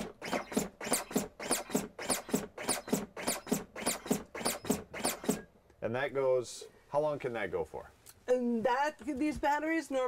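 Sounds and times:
compression device rising whir: 0.0s - 5.5s.

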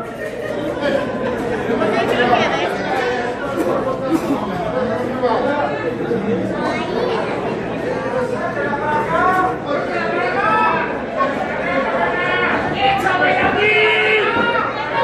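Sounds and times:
crowd chattering: 0.0s - 15.0s.

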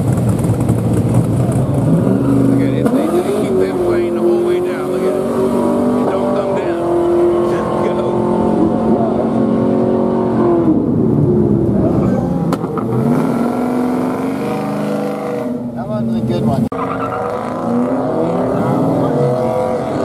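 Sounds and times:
car engines revving: 0.0s - 20.0s.

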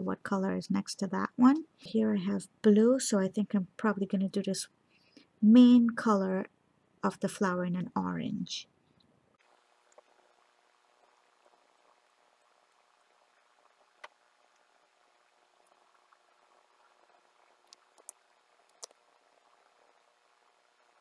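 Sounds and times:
faint room hiss: 0.0s - 21.0s.

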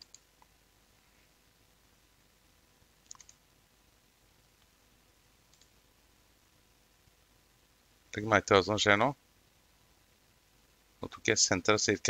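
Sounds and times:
computer mouse clicks: 0.0s - 0.5s, 3.0s - 3.4s, 5.5s - 5.8s.

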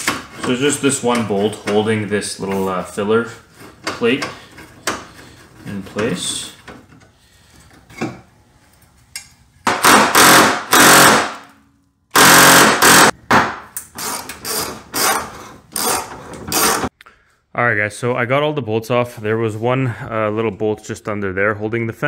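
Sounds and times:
power ratchet whirring: 9.8s - 11.3s, 12.1s - 13.1s, 13.8s - 16.9s.

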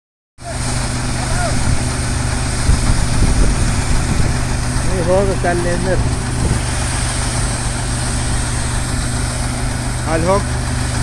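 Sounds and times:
threshing machine running: 0.4s - 11.0s.

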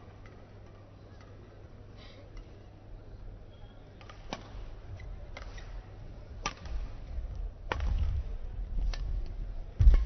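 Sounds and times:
low rumble of sports hall: 0.0s - 10.0s
racket striking shuttlecock: 4.0s - 5.8s, 6.4s - 7.0s.

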